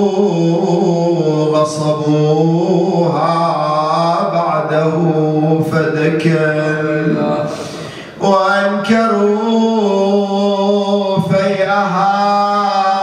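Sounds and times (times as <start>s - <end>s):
man chanting into a microphone: 0.0s - 13.0s.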